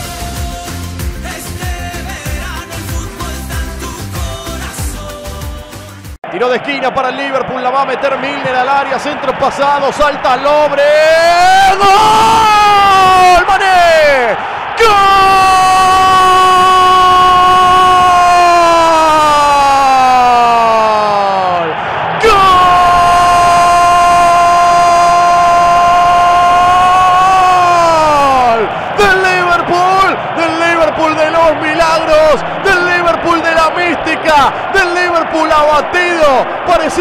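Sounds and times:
commentator shouting goal: 0:06.2 - 0:37.0
excited shouted commentary: 0:06.2 - 0:37.0.

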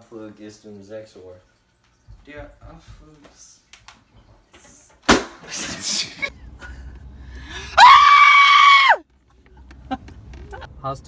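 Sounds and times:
loud high-pitched scream: 0:07.8 - 0:09.0.

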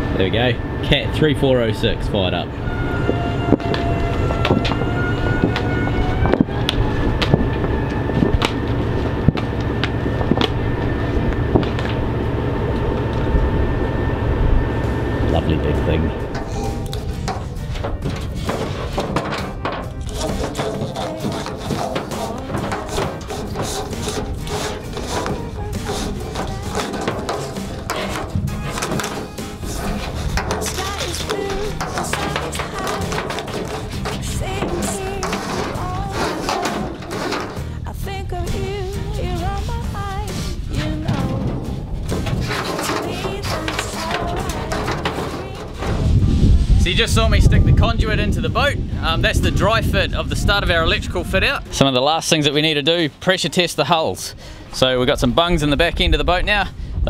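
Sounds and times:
background music: 0:00.0 - 0:53.5
diesel engine running: 0:00.0 - 0:55.0.

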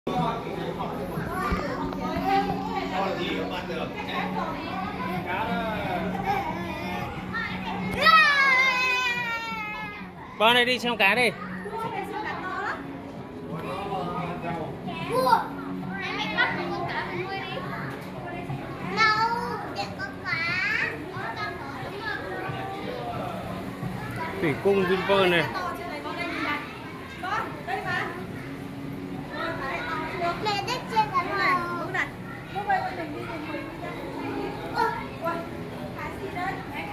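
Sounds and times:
children chattering and calling: 0:00.1 - 0:36.9.

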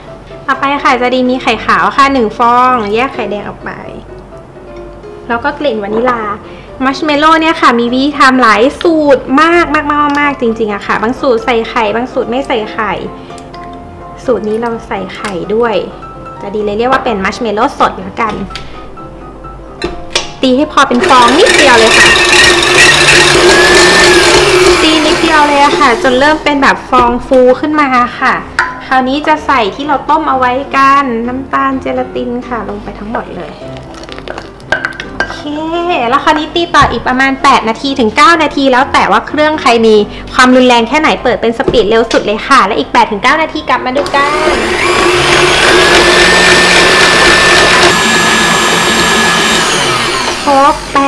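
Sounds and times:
stand mixer motor whine: 0:21.0 - 0:26.3, 0:44.0 - 0:51.0.

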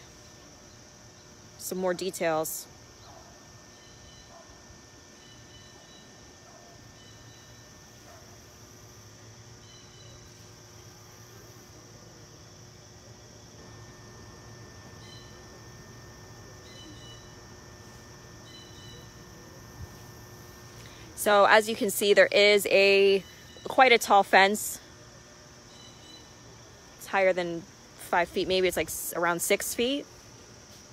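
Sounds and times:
high insect drone: 0:00.0 - 0:30.9.

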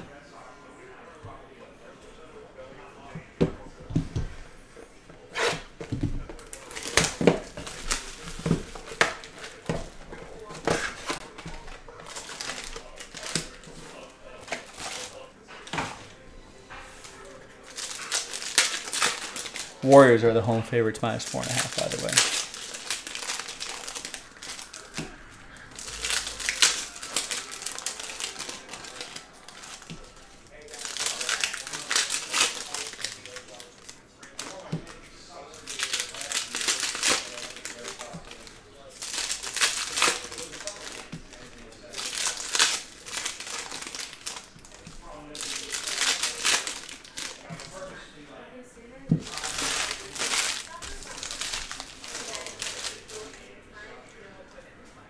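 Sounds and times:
wrappers crinkling torn open: 0:06.4 - 0:09.7, 0:10.4 - 0:15.2, 0:17.2 - 0:20.2, 0:21.2 - 0:47.9, 0:49.2 - 0:53.4
cards being handled: 0:21.0 - 0:25.2, 0:49.2 - 0:53.4.

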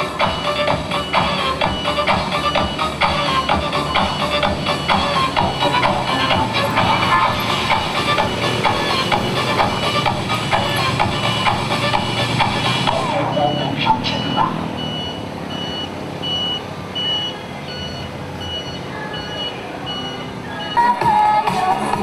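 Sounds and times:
dance music over loudspeakers: 0:00.0 - 0:14.8, 0:20.6 - 0:22.0
vehicle reversing alarm beeping: 0:00.0 - 0:21.5.

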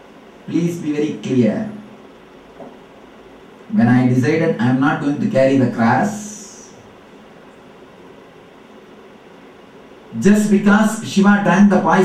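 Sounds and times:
faint background hiss: 0:00.0 - 0:12.0
man talking: 0:00.5 - 0:01.8, 0:03.7 - 0:06.8, 0:10.1 - 0:12.0.

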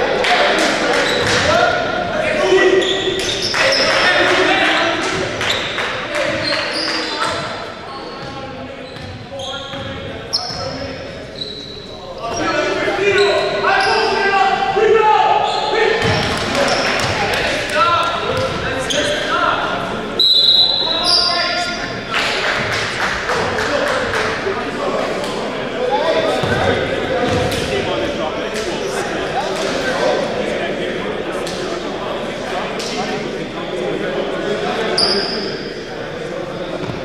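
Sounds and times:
sneakers squeaking on gym floor: 0:01.0 - 0:01.6, 0:02.5 - 0:04.1, 0:05.1 - 0:14.3, 0:18.3 - 0:19.3, 0:35.0 - 0:35.6
players shouting: 0:12.2 - 0:28.1
basketball bouncing: 0:18.3 - 0:18.6, 0:26.4 - 0:27.7.

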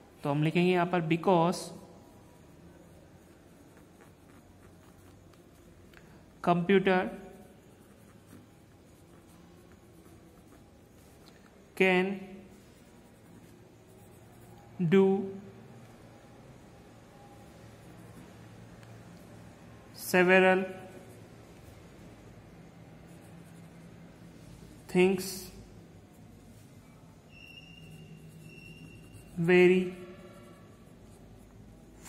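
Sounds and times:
pencil scratching on paper: 0:00.9 - 0:32.0.

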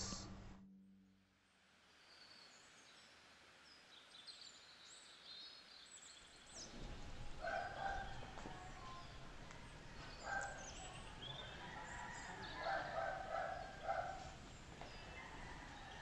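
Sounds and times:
outdoor hum: 0:00.0 - 0:01.4
small birds chirping: 0:02.0 - 0:16.0.

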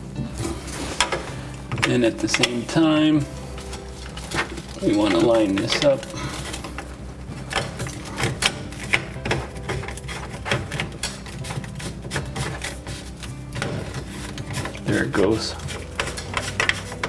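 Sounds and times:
plastic pipe pieces clicking and rubbing: 0:01.0 - 0:02.9, 0:04.0 - 0:17.0.

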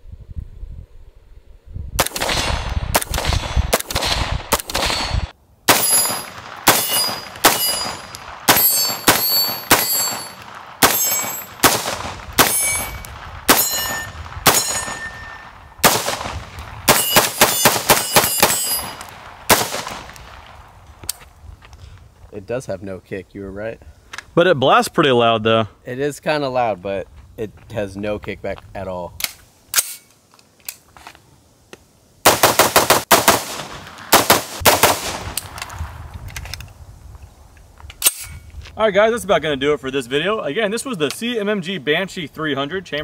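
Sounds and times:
pistol shots: 0:02.0 - 0:20.4, 0:32.2 - 0:35.6
steel targets clanging: 0:05.0 - 0:11.6, 0:12.4 - 0:15.5, 0:16.9 - 0:19.1.

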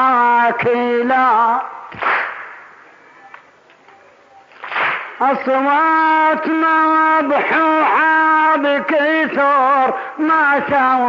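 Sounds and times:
faint scattered slaps: 0:01.9 - 0:02.6, 0:04.5 - 0:05.2
crowd slapping chests in unison: 0:01.9 - 0:02.7, 0:04.6 - 0:05.2.

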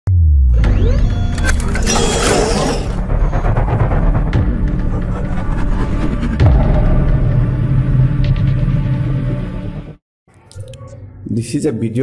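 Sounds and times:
deep bass hit with falling tone: 0:03.6 - 0:09.7.

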